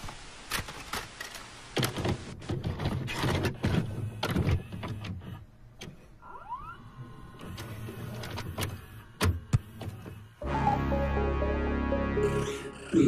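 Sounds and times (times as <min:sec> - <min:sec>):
rising whine: 0:10.4 - 0:13.0.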